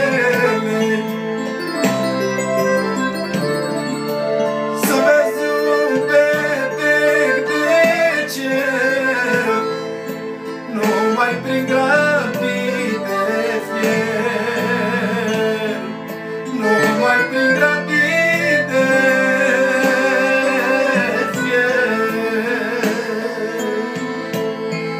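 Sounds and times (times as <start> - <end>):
man singing with vibrato: 0.0 - 4.0, 4.6 - 24.9
accordion melody: 0.0 - 24.9.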